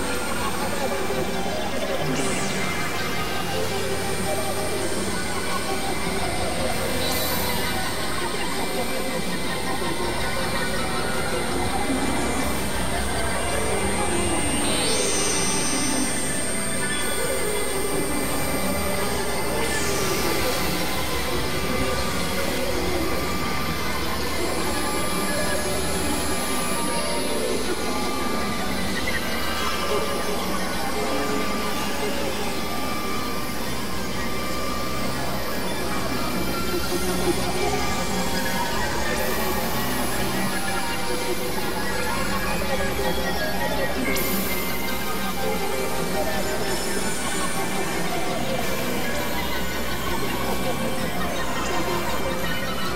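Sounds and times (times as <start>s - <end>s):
synthesizer drone: 0.0s - 52.9s
thin high whine: 0.0s - 52.9s.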